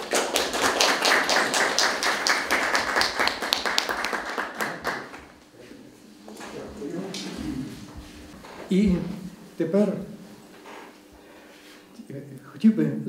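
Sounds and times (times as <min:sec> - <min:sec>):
audience clapping: 0:00.0 - 0:05.5.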